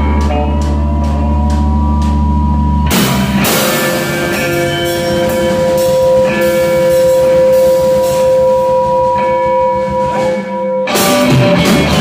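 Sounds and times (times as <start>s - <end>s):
live rock band: 0.0s - 12.0s
drum hits: 2.8s - 12.0s.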